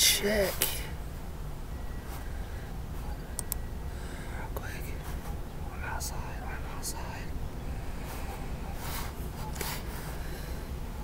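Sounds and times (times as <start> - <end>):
steady low rumble: 0.0 - 11.0
man whispering: 4.2 - 8.8.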